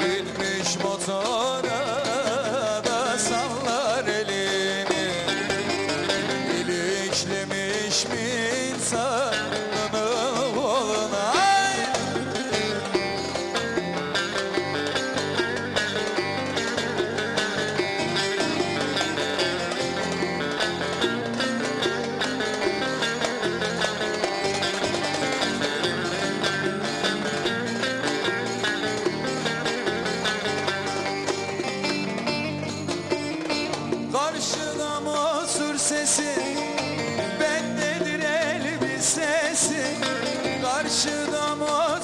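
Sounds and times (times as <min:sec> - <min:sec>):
plucked saz melody: 0:00.0 - 0:42.0.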